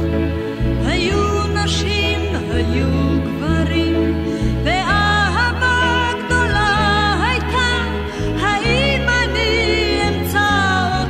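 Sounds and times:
person singing: 0.0 - 11.0
sustained low notes: 0.0 - 11.0.

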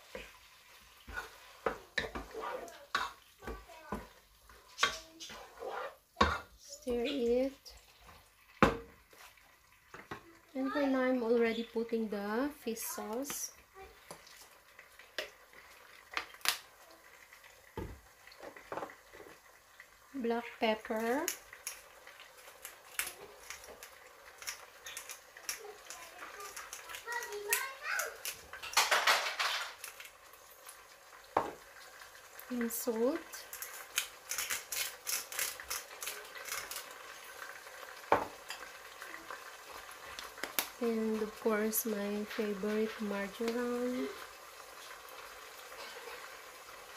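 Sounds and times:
salt grinder crunching: 33.4 - 37.0
bottle thump on worktop: 38.1 - 38.3.

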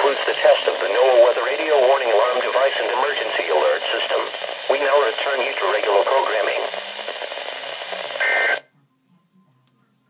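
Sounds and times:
radio static hiss: 0.0 - 8.6.

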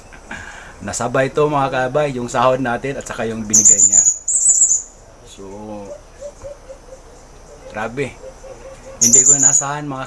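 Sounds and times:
small animal shrill trill: 3.6 - 4.9, 9.0 - 9.7.

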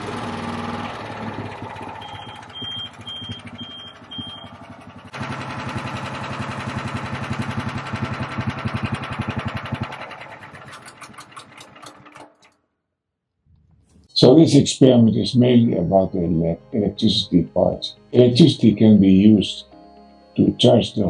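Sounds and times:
small generator engine running: 0.0 - 12.6
short high beeps: 2.0 - 4.6.

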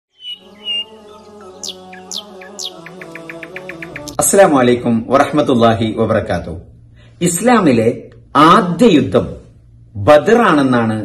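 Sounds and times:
bird-like chirps: 0.1 - 4.2.

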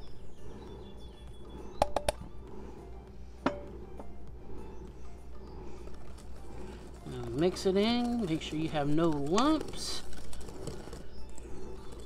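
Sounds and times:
faint background music: 0.0 - 12.0
low steady hum: 0.0 - 12.0.

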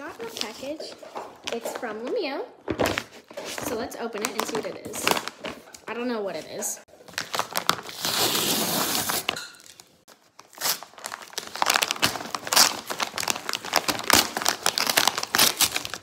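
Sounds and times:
paper bag ripping: 7.1 - 9.4, 10.4 - 16.0
stiff paper crinkling: 10.1 - 16.0.

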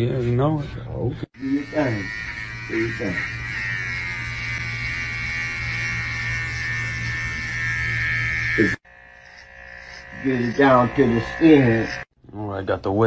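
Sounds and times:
electric hair clippers buzzing: 1.4 - 12.2.

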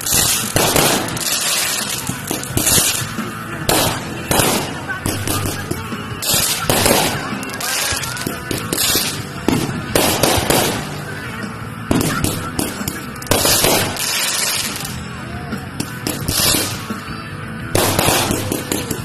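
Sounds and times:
fireworks bangs: 0.0 - 15.0, 15.8 - 17.1, 17.7 - 19.0
noisy background: 0.0 - 19.0.

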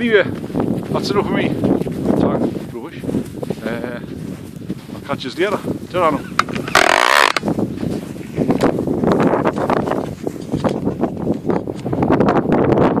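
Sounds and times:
wind buffeting microphone: 0.0 - 13.0
camera handling rustling and knocks: 6.4 - 7.4
loud scrape: 6.7 - 7.4.

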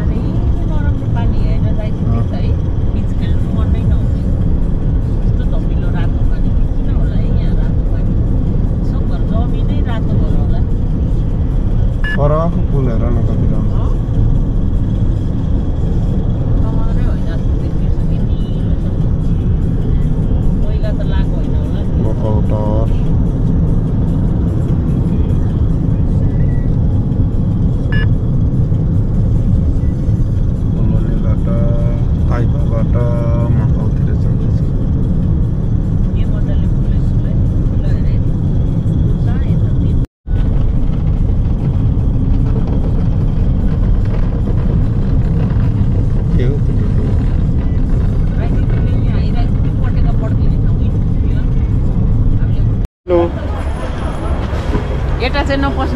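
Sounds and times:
car driving rumble: 0.0 - 55.9
faint voice or music: 30.8 - 34.7.

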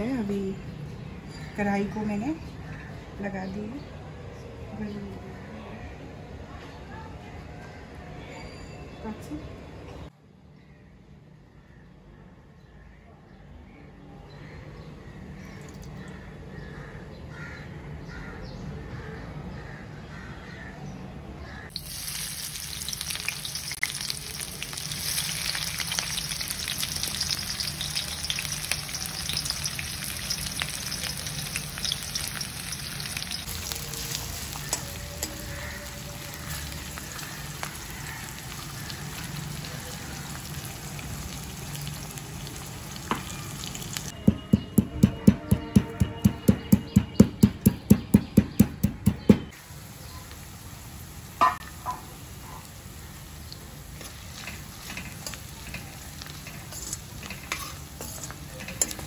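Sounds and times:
onions sizzling in oil: 21.7 - 44.2, 49.6 - 59.0
metal spatula knocking on pan: 44.2 - 49.5.

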